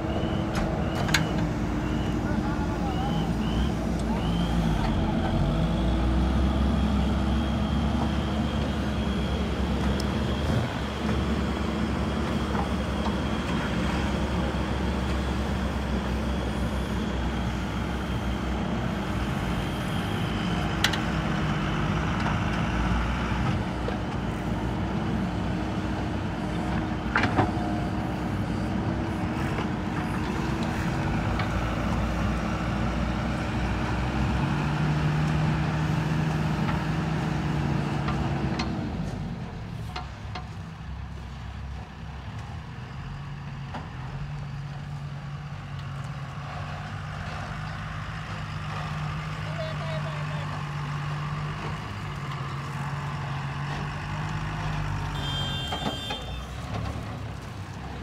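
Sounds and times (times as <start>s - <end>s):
heavy diesel engines running: 0.0s - 58.0s.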